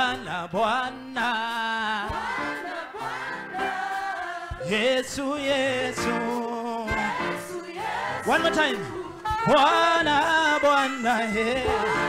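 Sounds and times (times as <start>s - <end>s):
gospel choir singing: 0.0s - 12.0s
lead singer on microphone: 0.0s - 12.0s.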